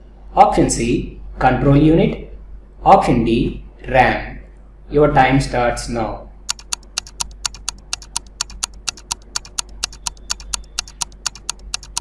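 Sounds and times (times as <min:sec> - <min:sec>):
clock ticking: 0:06.5 - 0:12.0.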